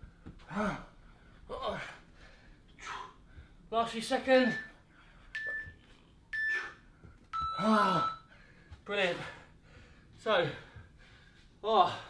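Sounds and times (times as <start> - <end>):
man groaning: 0.5 - 2.0, 7.6 - 8.1
interval timer beeping: 4.4 - 8.3.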